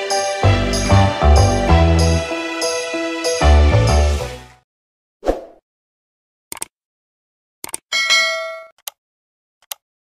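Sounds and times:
bell-like notification ding: 7.9s - 8.7s.

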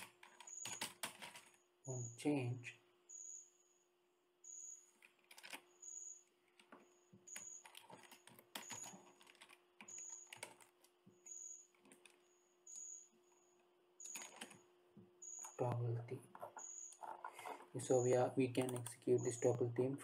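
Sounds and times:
keyboard typing: 0.0s - 1.6s, 4.9s - 5.8s, 6.5s - 13.0s, 14.0s - 14.7s, 15.3s - 19.7s.

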